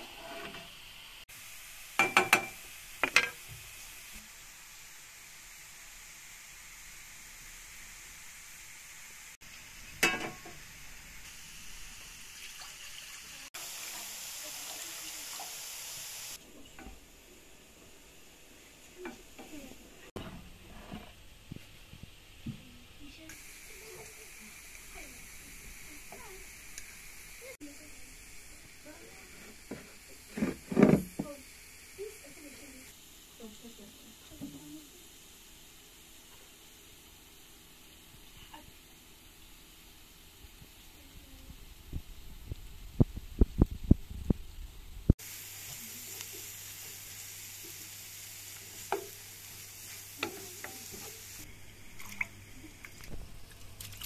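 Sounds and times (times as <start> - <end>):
greens sizzling in frying pan: 0.0 - 54.0.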